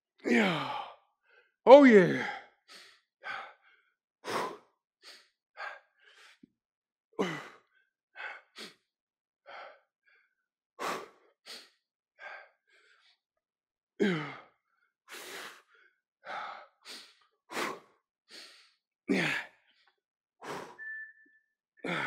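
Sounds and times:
man breathing hard: 9.5s - 10.2s, 10.8s - 13.2s, 15.1s - 20.8s.

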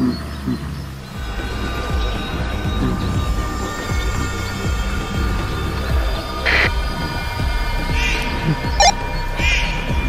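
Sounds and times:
low throbbing drone: 0.0s - 10.0s
falling low pulses: 0.9s - 9.4s.

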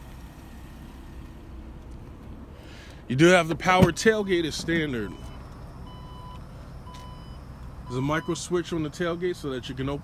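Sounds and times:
electronic warning beeps: 5.0s - 8.4s.

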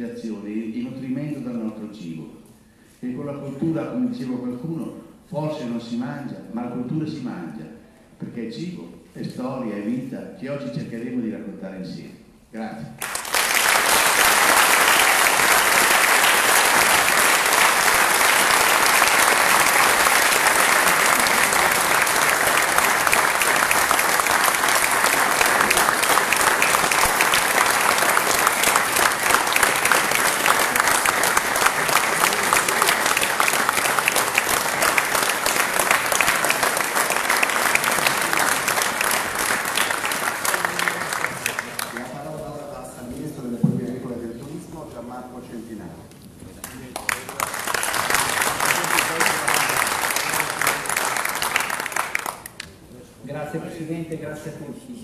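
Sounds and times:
audience applauding: 13.0s - 42.4s, 46.6s - 52.8s.

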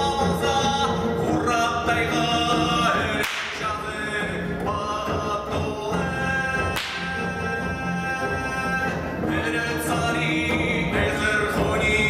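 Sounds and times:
folk music with singing: 0.0s - 12.0s
whip cracking: 3.2s - 3.6s.

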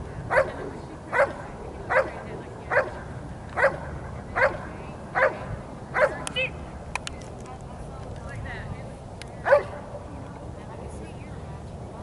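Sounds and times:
dog barking: 0.3s - 3.0s, 3.6s - 3.8s, 4.4s - 4.6s, 5.2s - 5.4s, 6.0s - 6.2s, 9.5s - 9.8s.

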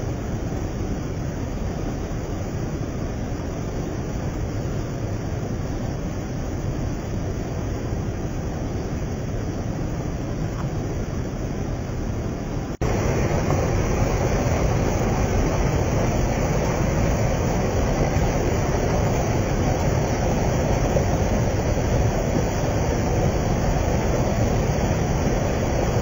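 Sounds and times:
floodwater rushing: 12.7s - 26.0s.

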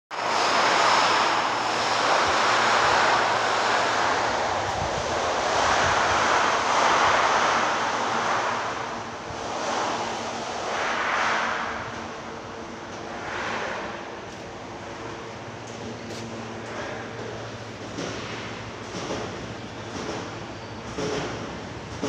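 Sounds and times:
loud rushing noise: 0.1s - 18.7s.

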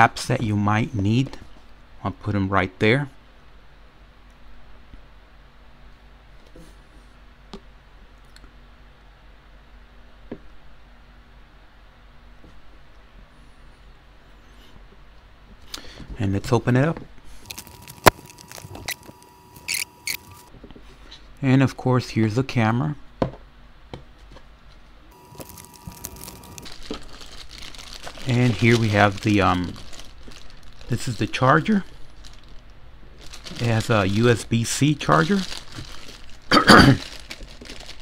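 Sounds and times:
plastic film crinkling: 17.4s - 20.5s, 25.1s - 38.0s
person coughing: 36.5s - 37.1s.

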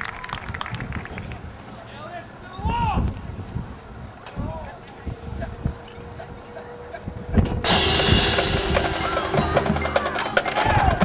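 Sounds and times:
crowd clapping: 0.0s - 1.6s
wind rumble: 0.0s - 1.7s, 2.5s - 11.0s
crowd murmur: 3.6s - 11.0s.

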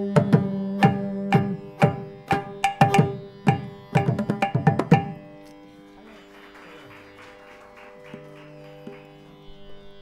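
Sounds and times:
tanpura drone: 0.0s - 10.0s.

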